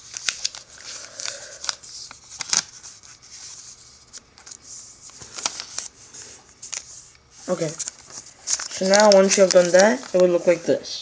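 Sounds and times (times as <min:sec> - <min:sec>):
paper being folded: 0:00.0 - 0:10.8.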